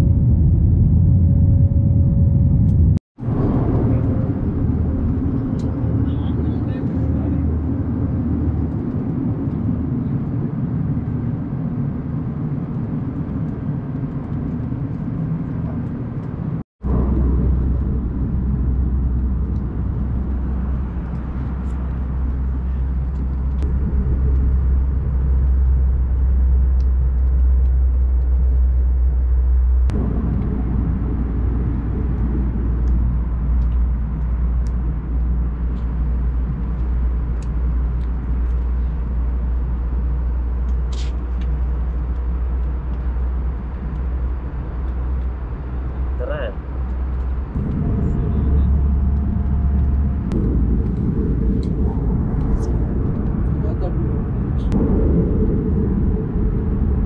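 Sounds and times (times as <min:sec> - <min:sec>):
airliner cabin engine rumble: 0:00.0 - 0:57.0.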